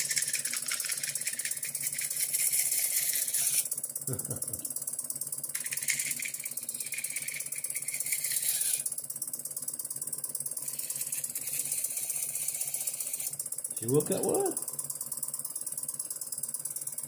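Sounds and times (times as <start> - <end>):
saw blade cutting wood: 0.0 - 3.7, 5.6 - 8.9, 10.6 - 13.4
bandsaw mechanical clatter: 0.0 - 4.8, 5.5 - 9.0, 10.6 - 14.8.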